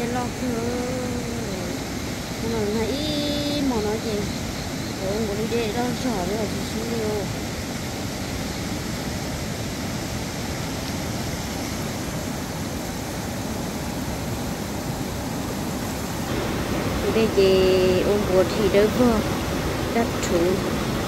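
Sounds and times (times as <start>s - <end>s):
river rushing over rocks: 0.0s - 21.0s.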